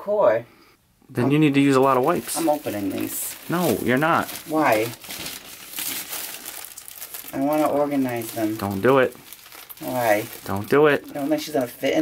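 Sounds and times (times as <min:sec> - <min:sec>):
plastic wrapping crinkling: 0:01.4 - 0:12.0.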